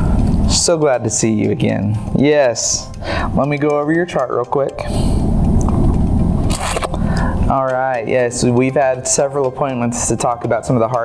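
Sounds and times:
sharp scrape: 6.4 - 7.0.

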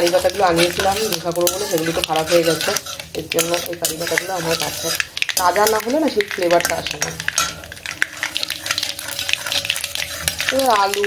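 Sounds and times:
potato filling sizzling: 0.0 - 11.0
steel spatula scraping a pan: 0.0 - 11.0.

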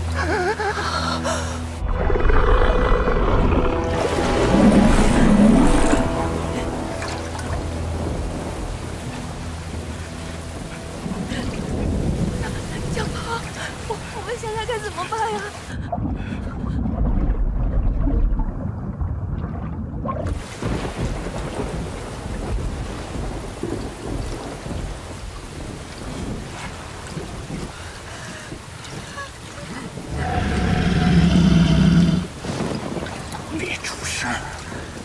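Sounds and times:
heavy rain: 0.0 - 17.0, 20.3 - 35.0
loud low droning tone: 1.5 - 13.6
deep thunder rumbling: 1.8 - 15.0, 15.8 - 29.1.

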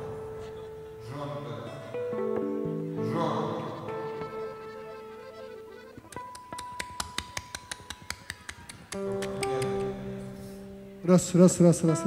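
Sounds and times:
sharp taps: 6.0 - 9.9.

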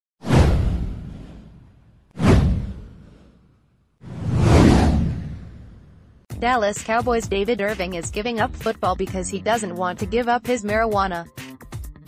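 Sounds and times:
whoosh with deep low rumble: 0.2 - 6.3.

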